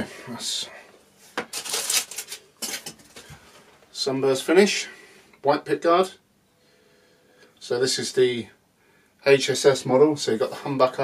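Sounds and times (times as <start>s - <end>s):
guitar handling rustles and scrapes: 1.2s - 3.9s.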